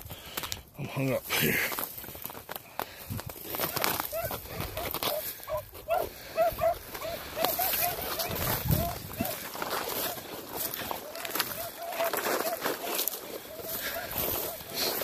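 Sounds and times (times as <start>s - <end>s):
dry brush crackling: 0.2s - 15.0s
hounds barking in yelps: 3.6s - 15.0s.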